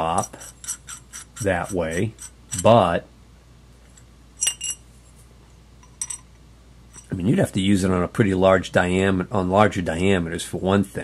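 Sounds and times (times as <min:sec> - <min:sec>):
steel parts clinking: 0:03.9 - 0:04.8, 0:05.8 - 0:06.3.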